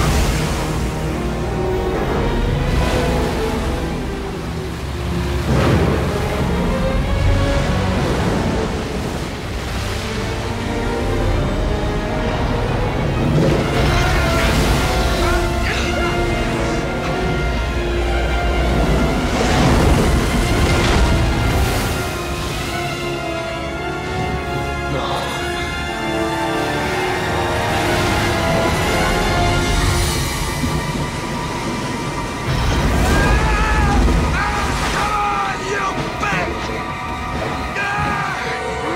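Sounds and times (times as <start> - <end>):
dramatic orchestral music: 0.0 - 38.9
wave breaking: 0.0 - 38.9.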